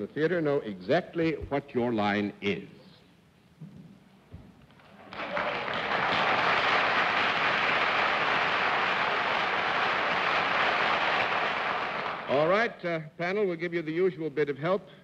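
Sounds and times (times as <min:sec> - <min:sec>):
audience applauding: 0:04.9 - 0:12.4.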